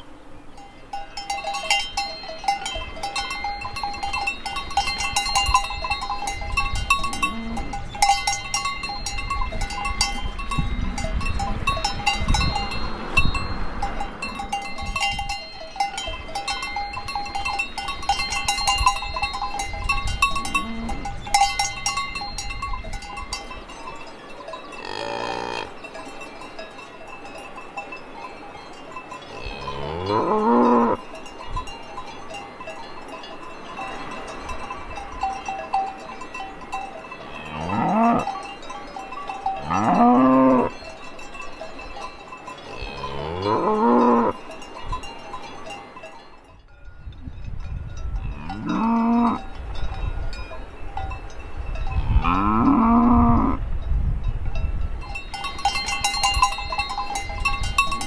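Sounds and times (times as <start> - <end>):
cowbells ringing: 0.5 - 58.0
cattle mooing: 24.8 - 25.7, 29.3 - 31.0, 37.3 - 38.3, 39.6 - 40.7, 42.6 - 44.4, 48.4 - 49.4, 52.1 - 53.6.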